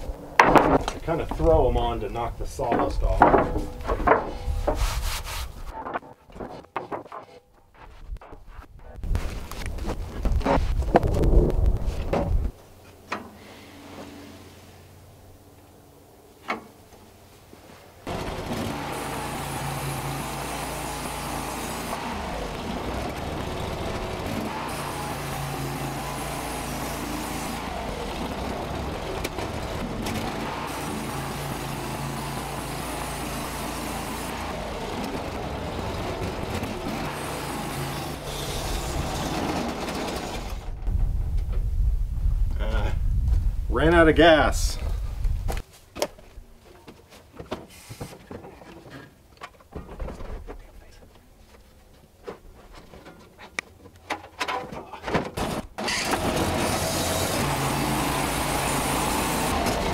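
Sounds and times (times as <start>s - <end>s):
sawmill engine running: 0.0s - 6.0s, 18.0s - 41.4s, 55.5s - 59.9s
wooden boards clattering: 0.0s - 11.2s, 45.9s - 50.6s, 51.2s - 57.7s.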